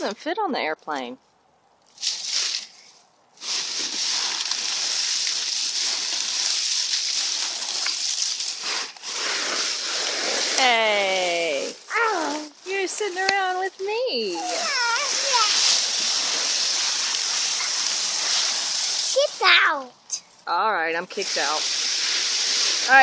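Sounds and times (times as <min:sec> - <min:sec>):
dry leaves rustling and crunching: 0:01.8 - 0:20.1, 0:21.2 - 0:23.0
person speaking: 0:10.6 - 0:15.7, 0:19.1 - 0:21.6.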